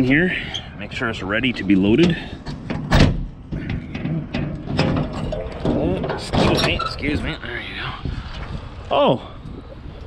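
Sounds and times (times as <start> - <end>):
metal door lock clunk: 2.0 - 6.9
door hardware rattling: 2.6 - 6.9.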